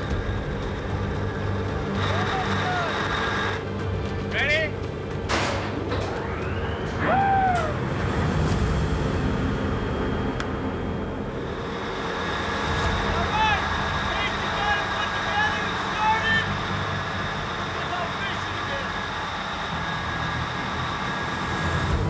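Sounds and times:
background music: 0.0 - 22.0
engine-room machinery drone: 0.0 - 22.0.

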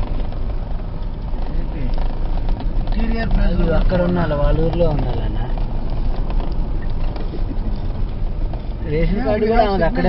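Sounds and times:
vehicle engine and tyre rumble: 0.0 - 10.0.

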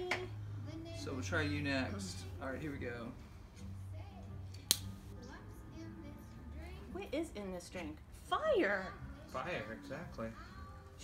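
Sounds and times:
faint background music: 0.0 - 11.0
lighter click: 4.6 - 4.9.

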